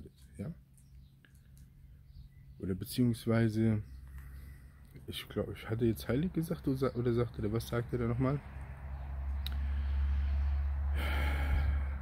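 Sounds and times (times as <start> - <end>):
steady low hum: 0.0 - 12.0
man breathing: 9.5 - 12.0.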